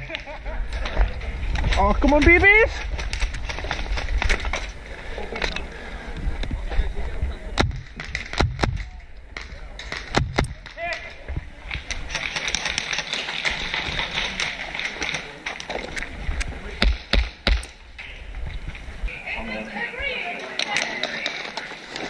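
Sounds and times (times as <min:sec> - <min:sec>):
bb strikes: 0:07.5 - 0:10.8, 0:16.8 - 0:17.8
airsoft gunshots: 0:10.0 - 0:10.7.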